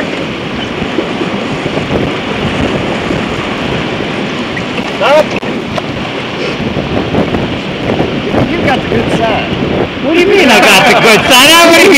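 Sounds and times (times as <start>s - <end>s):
rushing whitewater: 0.0s - 11.9s
wind buffeting microphone: 0.0s - 11.9s.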